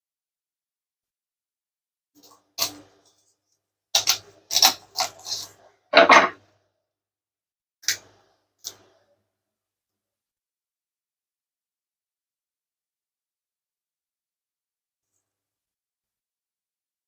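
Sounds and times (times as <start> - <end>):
knife crunching through bone: 4.0 - 5.6.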